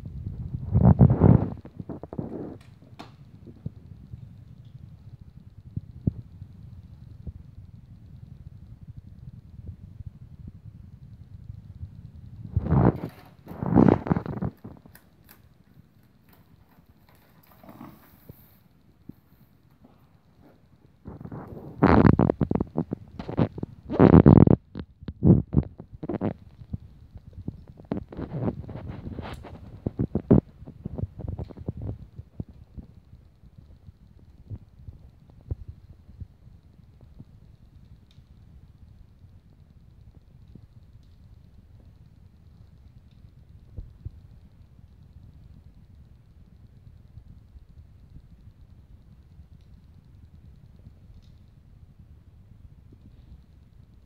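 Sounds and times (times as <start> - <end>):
rustling: 0.0 - 37.1.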